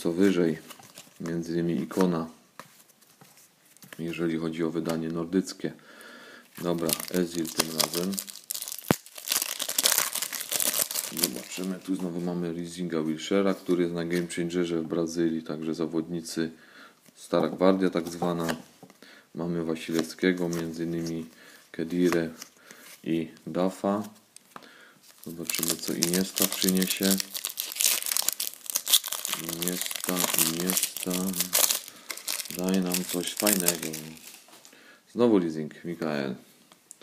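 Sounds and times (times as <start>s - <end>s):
foil wrapper crinkling and tearing: 6.8s - 11.7s, 25.1s - 34.5s.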